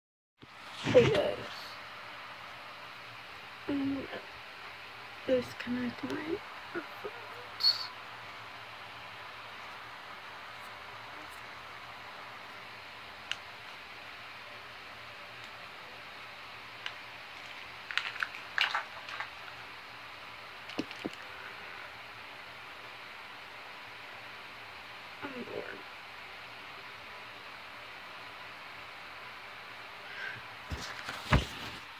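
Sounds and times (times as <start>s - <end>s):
low room tone hiss: 0.4s - 31.9s.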